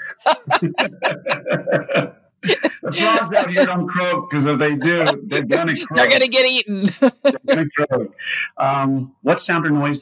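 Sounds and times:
person laughing: 0.0 - 10.0.

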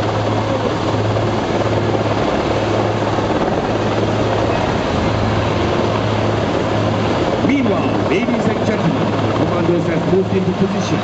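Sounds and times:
helicopter hovering: 0.0 - 11.0.

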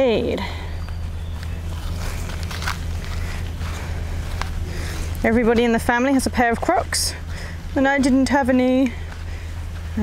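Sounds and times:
footsteps on grass and sand: 0.0 - 10.0
low hum: 0.0 - 10.0.

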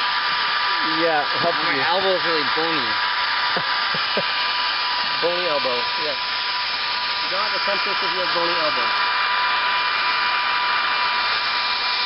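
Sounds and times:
hair dryer running: 0.0 - 12.0.

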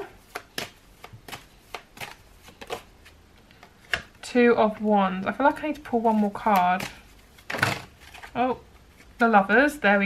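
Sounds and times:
cards being shuffled by hand: 0.0 - 4.2, 5.6 - 9.3.

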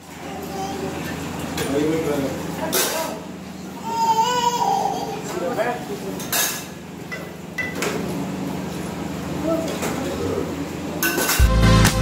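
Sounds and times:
child's high voice: 0.2 - 1.1, 3.8 - 5.3
indistinct family voices talking: 2.4 - 6.0.

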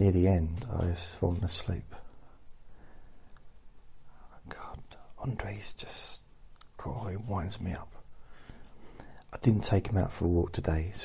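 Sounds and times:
man whispering: 0.0 - 2.3, 4.0 - 8.2, 9.0 - 11.0.

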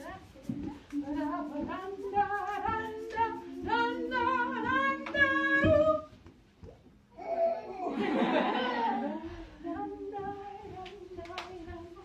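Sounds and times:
women singing unaccompanied: 0.0 - 6.2, 8.2 - 12.0.

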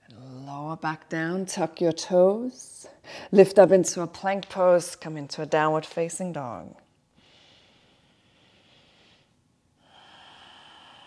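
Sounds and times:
person breathing: 7.2 - 11.0.

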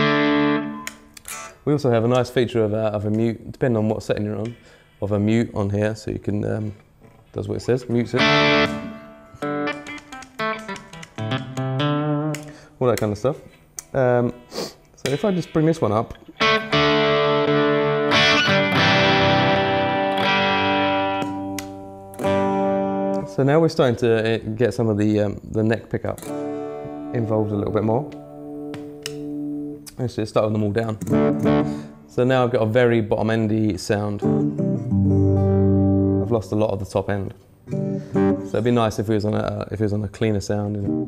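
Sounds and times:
muted electric guitar notes: 8.1 - 12.7, 15.0 - 23.4, 31.0 - 32.0
faint guitar pick clicks: 9.4 - 14.0, 21.2 - 22.3, 28.1 - 30.0.

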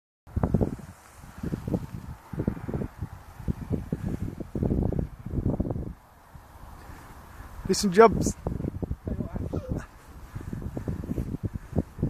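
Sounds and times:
wind buffeting microphone: 0.3 - 12.0.

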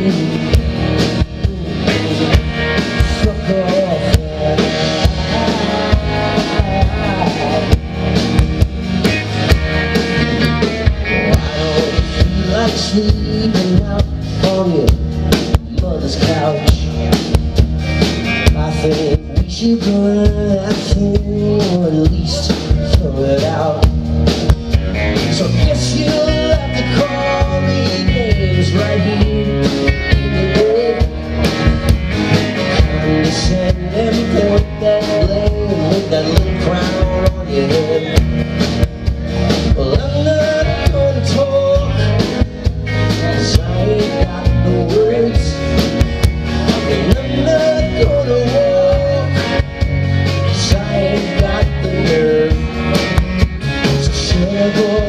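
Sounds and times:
drum kit beat: 0.0 - 55.0
electric and acoustic guitars: 0.0 - 55.0
live rock band playing: 0.0 - 55.0.

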